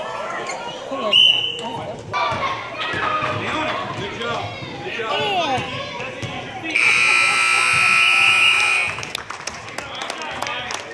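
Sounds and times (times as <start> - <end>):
scoreboard buzzer blast: 6.8 - 9.1.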